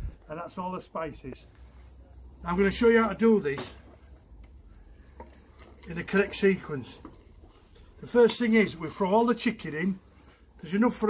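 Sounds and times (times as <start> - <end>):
spoon stirring onions in pot: 3.5 - 9.2.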